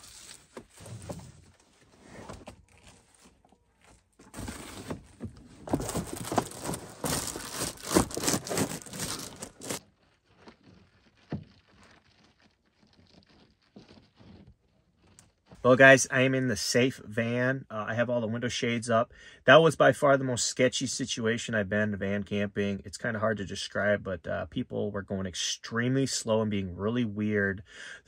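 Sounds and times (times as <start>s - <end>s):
foil shades crinkling and scraping: 0.0s - 15.6s.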